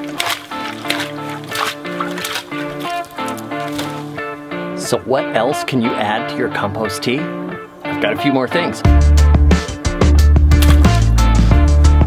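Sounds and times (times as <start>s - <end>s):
music with bass and drum beat: 8.8s - 12.0s.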